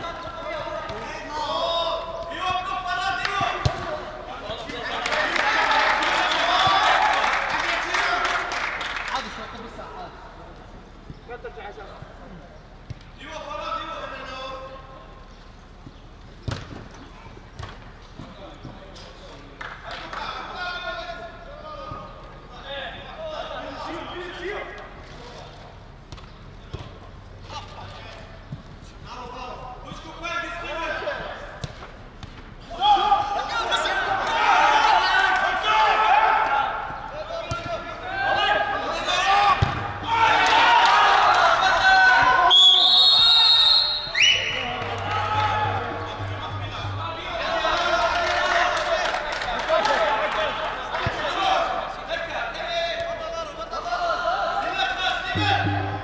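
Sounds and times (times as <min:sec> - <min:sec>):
football being kicked: 0:03.5 - 0:03.9, 0:16.4 - 0:16.8, 0:37.5 - 0:37.7, 0:39.6 - 0:40.0
people shouting: 0:32.7 - 0:36.9, 0:38.0 - 0:42.5, 0:43.2 - 0:48.9.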